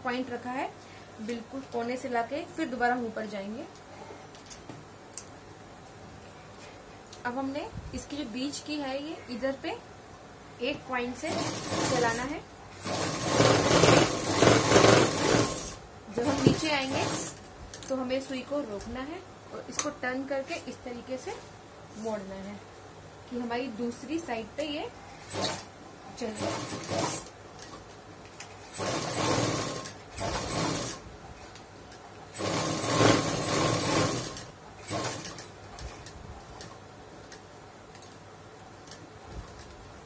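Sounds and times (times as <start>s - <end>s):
sewing machine stitching: 11.2s - 17.4s, 25.2s - 27.8s, 28.6s - 31.0s, 32.3s - 35.9s.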